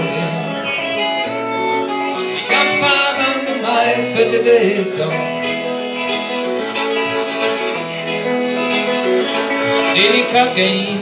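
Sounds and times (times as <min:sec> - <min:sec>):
guitar accompaniment: 0:00.0 - 0:11.0
harmonica playing: 0:00.0 - 0:11.0.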